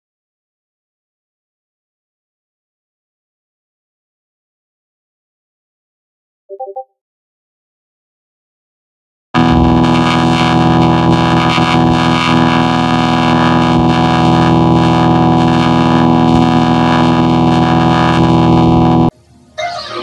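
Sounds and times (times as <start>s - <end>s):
distorted electronic chord: 9.4s - 19.3s.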